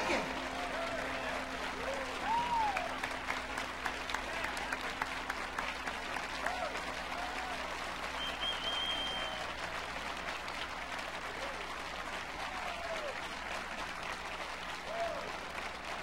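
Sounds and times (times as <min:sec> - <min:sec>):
voices calling out: 0:00.0 - 0:05.6
audience applauding: 0:00.0 - 0:16.0.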